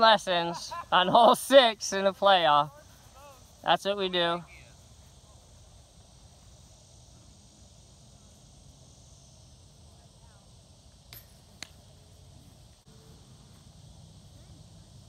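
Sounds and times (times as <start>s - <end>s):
high insect drone: 0.0s - 15.0s.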